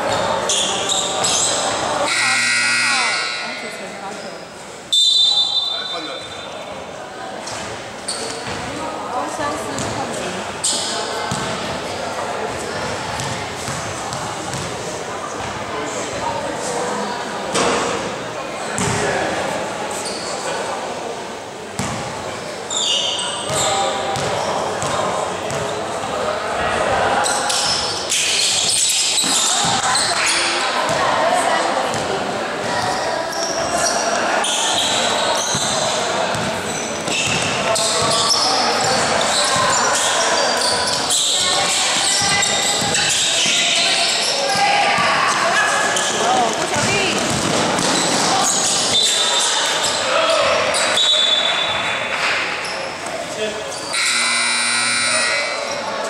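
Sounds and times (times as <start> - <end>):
voices calling and chattering: 0.0 - 56.0
basketball bouncing on gym floor: 9.7 - 10.0, 11.3 - 11.8, 12.9 - 14.7, 18.8 - 19.0, 21.8 - 22.1, 23.5 - 25.7, 35.5 - 38.2, 41.6 - 43.6, 46.4 - 48.4.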